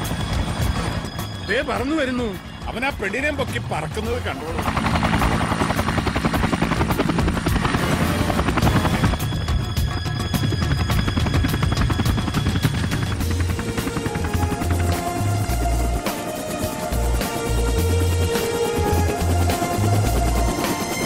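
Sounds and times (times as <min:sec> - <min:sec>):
background music: 0:00.0 - 0:21.0
helicopter rotor beating: 0:00.0 - 0:21.0.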